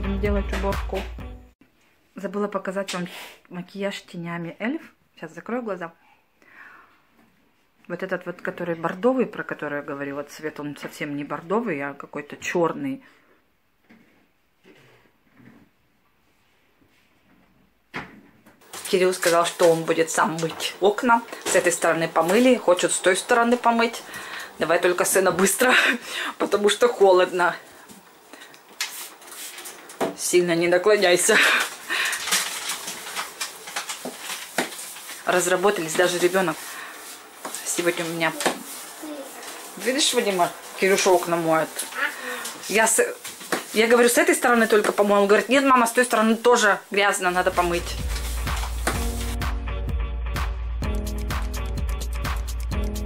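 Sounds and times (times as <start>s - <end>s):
woman breathing out: 6.1s - 7.0s, 26.0s - 26.4s
person speaking: 37.5s - 48.7s.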